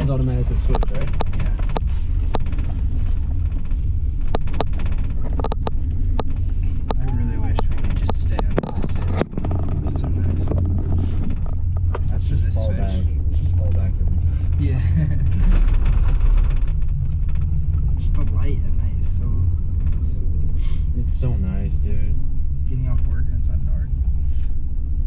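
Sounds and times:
gondola cabin rumble: 0.0 - 25.0
low voices: 6.6 - 16.1.

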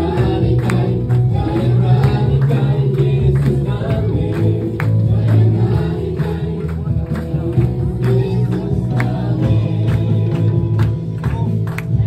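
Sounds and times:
group singing gospel song: 0.0 - 12.0
hands clapping: 0.0 - 12.0.

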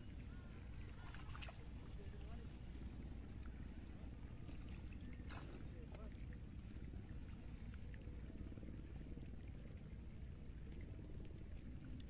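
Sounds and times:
low steady rumble: 0.0 - 12.0
water splashes and knocks: 0.9 - 2.0, 4.4 - 6.2.

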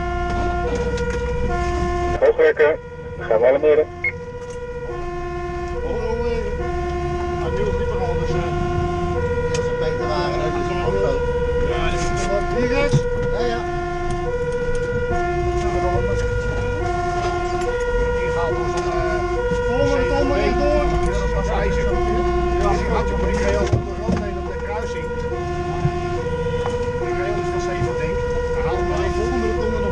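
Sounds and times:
truck engine running: 0.0 - 29.9
two-tone siren: 0.0 - 29.9.

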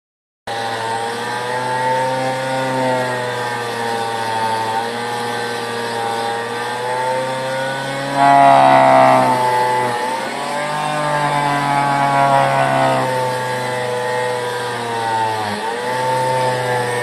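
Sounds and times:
rotary tool motor whine: 0.9 - 17.0.

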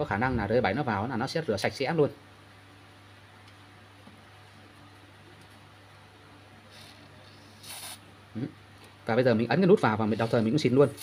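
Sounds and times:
aerosol can spraying hiss: 7.6 - 8.0.

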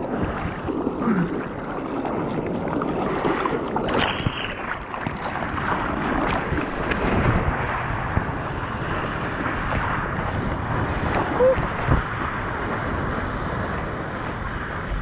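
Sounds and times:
water rushing and splashing: 0.0 - 15.0
wind on microphone: 0.0 - 15.0.

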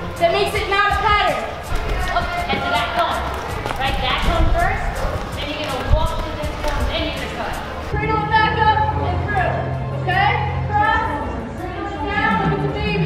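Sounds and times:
background music: 0.0 - 13.0
indistinct voices in a hall: 0.0 - 13.0.

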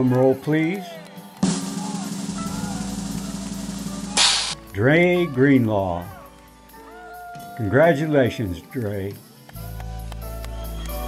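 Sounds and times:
snare drum roll: 1.4 - 4.6.

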